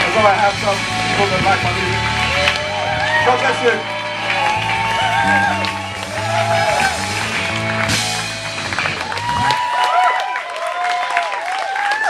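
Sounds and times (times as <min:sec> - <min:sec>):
audience applauding: 0:00.0 - 0:12.0
whooping and cheering: 0:01.6 - 0:12.0.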